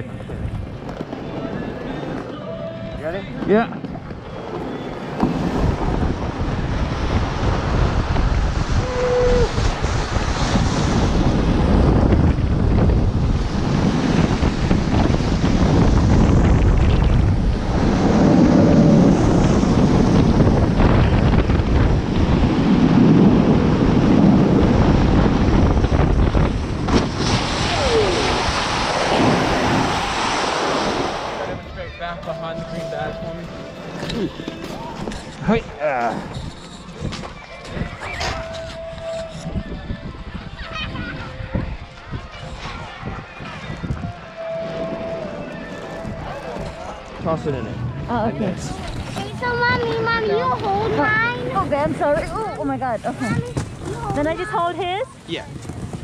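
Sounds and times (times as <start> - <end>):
snow tube sliding on snow: 0.0 - 39.8, 42.3 - 56.0
wind rushing over microphone: 2.7 - 56.0.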